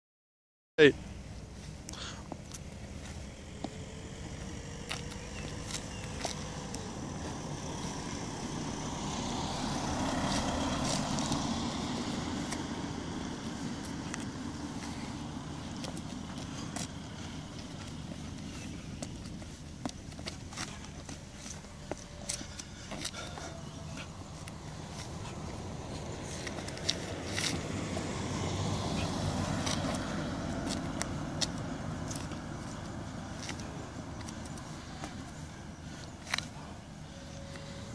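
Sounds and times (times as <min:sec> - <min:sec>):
car rumbling: 0:01.0 - 0:37.9
vehicle passing: 0:01.0 - 0:37.9
sneakers scuffing asphalt: 0:01.4 - 0:37.9.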